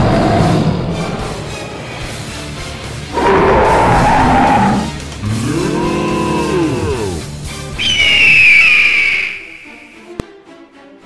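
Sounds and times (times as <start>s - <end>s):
animal call rising and falling: 3.2s - 7.2s, 7.8s - 10.1s
high shrill animal call: 7.8s - 10.1s.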